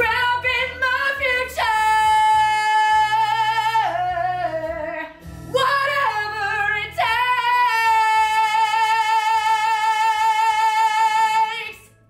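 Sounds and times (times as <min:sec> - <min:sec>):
woman belting a show tune: 0:00.0 - 0:11.9.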